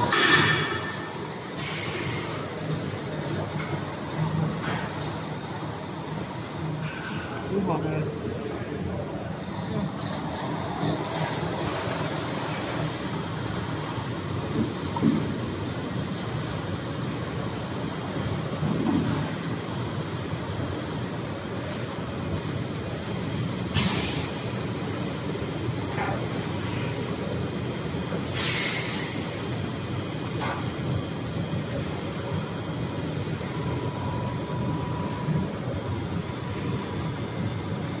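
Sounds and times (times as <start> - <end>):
workshop machinery hum: 0.0 - 38.0
compressed air hissing: 1.6 - 2.5, 23.8 - 24.4, 28.4 - 29.5.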